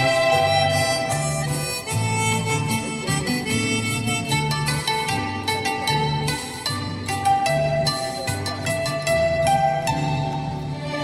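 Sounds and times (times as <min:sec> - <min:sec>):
plucked guitar: 0:00.0 - 0:11.0
reedy lead melody: 0:00.0 - 0:11.0.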